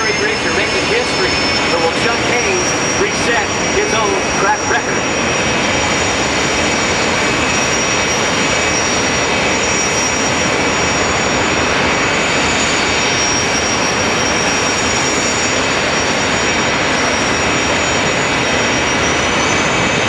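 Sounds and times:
high turbine whine: 0:00.0 - 0:20.0
jet turbine engines running: 0:00.0 - 0:20.0.

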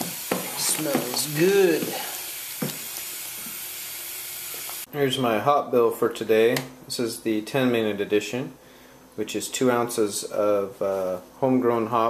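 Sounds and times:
spoon stirring wet grain: 0:00.0 - 0:03.5.

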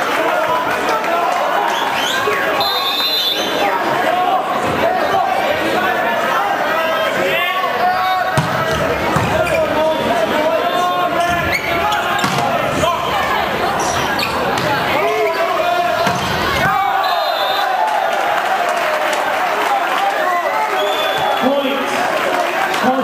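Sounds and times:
crowd and players shouting: 0:00.0 - 0:23.0
volleyball bounced and struck: 0:08.3 - 0:09.5, 0:12.2 - 0:12.8, 0:14.4 - 0:14.9, 0:16.0 - 0:16.8.

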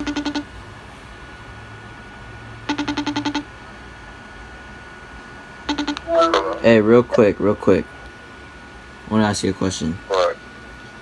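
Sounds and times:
trilled call tone beeps: 0:02.7 - 0:03.5, 0:05.7 - 0:06.4.

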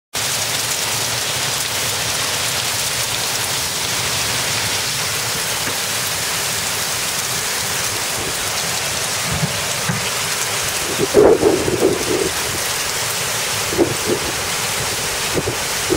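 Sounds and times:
heavy rain and hail: 0:00.2 - 0:15.9.

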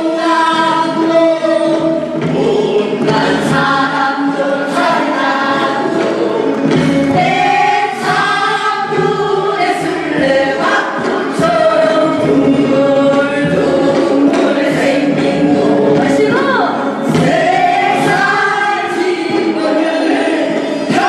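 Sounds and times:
folk opera chorus singing: 0:00.0 - 0:21.0.

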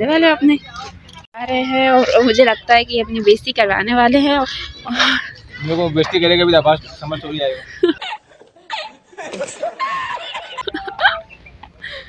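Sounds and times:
man laughing hard: 0:07.0 - 0:12.0.

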